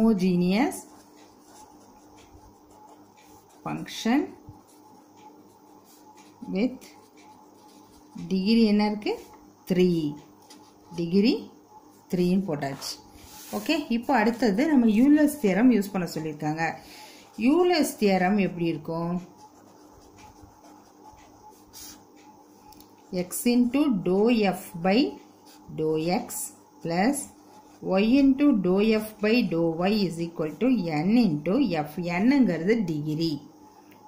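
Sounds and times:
pen scratching on paper: 0.6 - 9.4, 12.0 - 16.6, 17.3 - 22.4, 25.4 - 31.4
pen writing on paper: 19.2 - 22.1.

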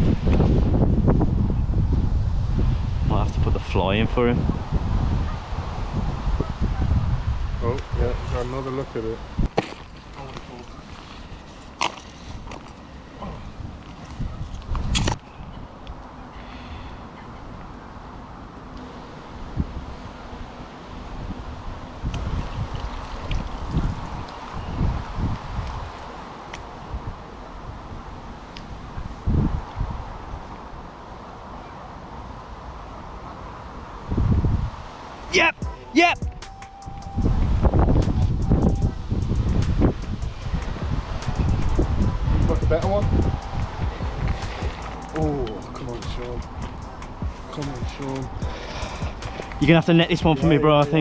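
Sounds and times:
wind buffeting microphone: 0.0 - 18.1, 19.2 - 31.6, 33.7 - 51.0
steady hiss: 36.5 - 51.0.

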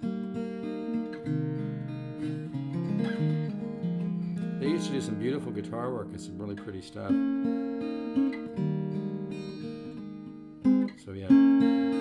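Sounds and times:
acoustic guitar chords: 0.0 - 12.0
guitar strum: 0.0 - 12.0.

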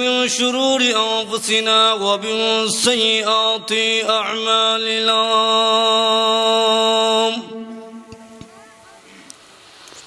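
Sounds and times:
man chanting into a microphone: 0.0 - 8.6.

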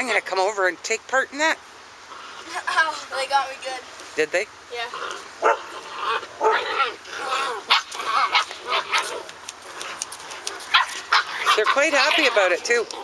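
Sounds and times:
puppies yipping and barking: 4.8 - 13.0.

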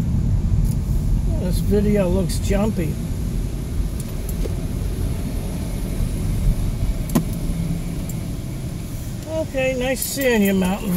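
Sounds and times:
engine and tyres rumbling: 0.0 - 10.9.

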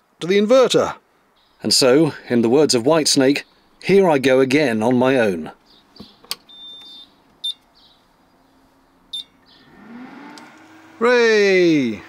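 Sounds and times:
cooling fan spinning up: 9.6 - 12.0.

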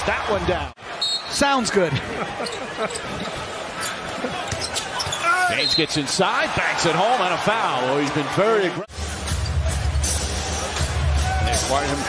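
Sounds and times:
arena crowd hubbub: 0.0 - 12.0.

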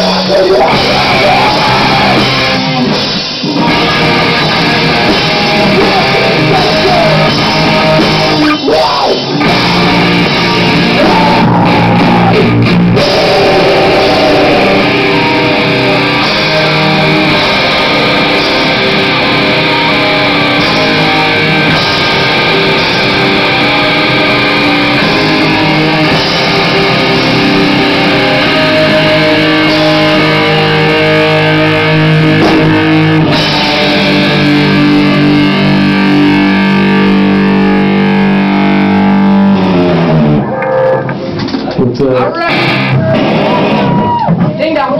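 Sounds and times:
loud electric guitars: 0.0 - 44.9
rock band playing live: 0.0 - 44.9.

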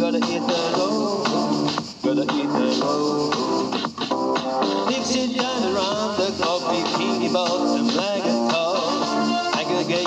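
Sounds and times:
instrumental pop backing track: 0.0 - 10.0.

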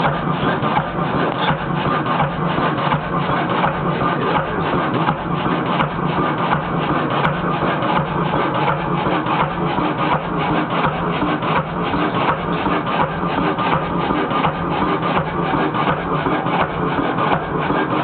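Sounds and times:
marine diesel engine clattering: 0.0 - 18.0.

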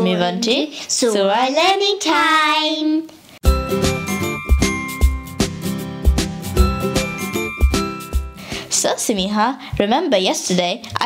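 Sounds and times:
bright musical jingle: 3.4 - 8.6.

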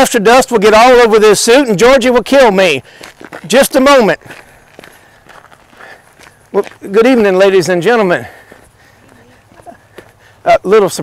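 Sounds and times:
quiet footsteps walking: 1.8 - 11.0.

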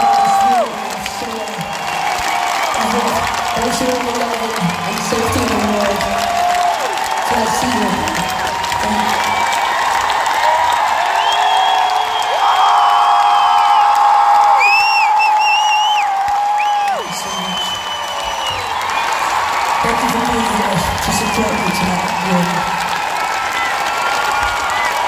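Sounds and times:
crowd clapping and cheering: 0.0 - 25.0.

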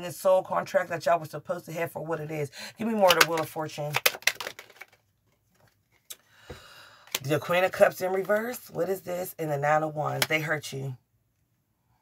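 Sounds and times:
faint rustling of cards: 3.0 - 8.8.

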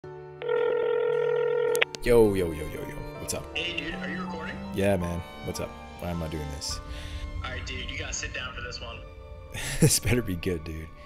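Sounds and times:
buzzy phone ringing tone: 0.4 - 1.9
phone click: 1.7 - 2.0.

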